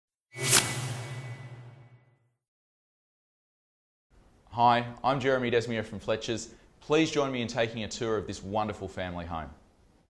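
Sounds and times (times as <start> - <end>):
whoosh: 0.3 - 2.2
low hum: 0.4 - 2.2.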